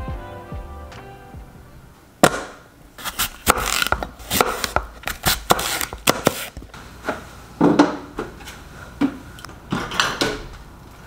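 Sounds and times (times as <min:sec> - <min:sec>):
background music: 0:00.0 - 0:02.1
knife chopping apple on board: 0:02.2 - 0:06.6.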